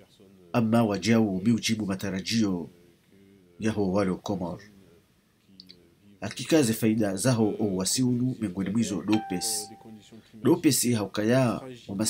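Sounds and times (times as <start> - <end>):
man's voice: 5.6 - 12.0
electronic beep tone: 9.1 - 10.1.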